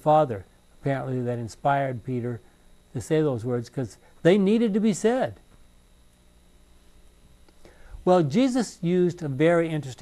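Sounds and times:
man speaking: 0:00.0 - 0:05.4, 0:08.0 - 0:10.0
low steady hum: 0:00.0 - 0:10.0.

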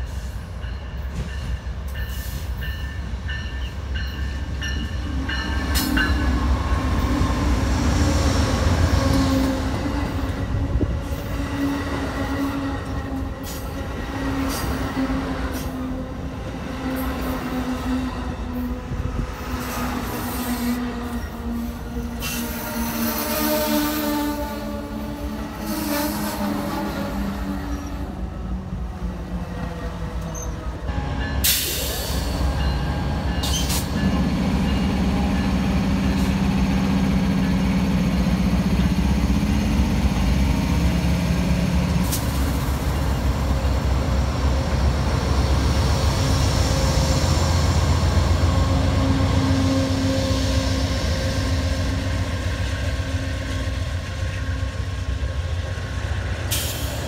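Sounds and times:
diesel locomotive engine: 0:00.0 - 0:57.0
train wheels rumbling on rails: 0:00.0 - 0:57.0.

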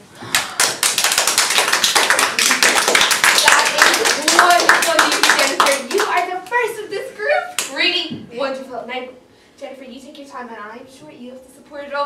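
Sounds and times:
people clapping: 0:00.2 - 0:06.7, 0:07.5 - 0:07.8.

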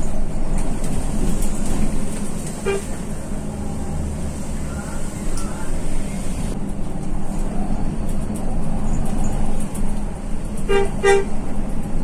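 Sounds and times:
truck horn toot: 0:02.6 - 0:03.0, 0:10.6 - 0:11.4.

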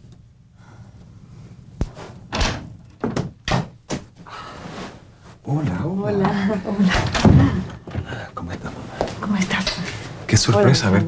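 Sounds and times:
door pushed open: 0:02.3 - 0:03.8.

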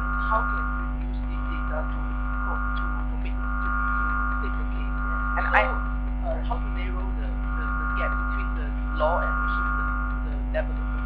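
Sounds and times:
faint voices: 0:00.0 - 0:11.0
steady electrical hum: 0:00.0 - 0:11.0.

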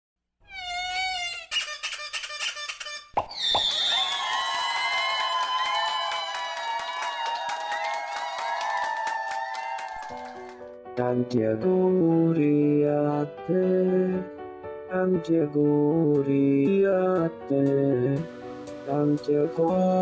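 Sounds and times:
sharp popping sounds: 0:01.8 - 0:03.9
warbling whistle-like tone: 0:03.2 - 0:04.2.

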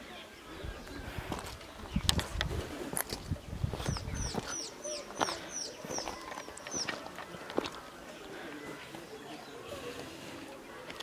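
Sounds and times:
bird chirping: 0:03.7 - 0:07.5.

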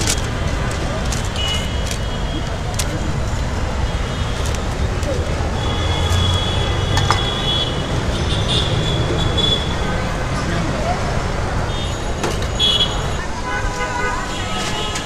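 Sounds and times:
people talking nearby: 0:00.0 - 0:07.3, 0:09.7 - 0:15.0
traffic rumble: 0:00.0 - 0:15.0.

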